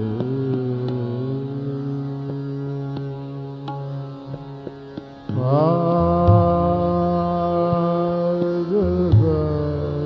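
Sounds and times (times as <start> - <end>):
man singing classical vocal: 0.0 - 4.0, 5.3 - 10.0
steady drone: 0.0 - 10.0
low accompaniment: 5.3 - 10.0.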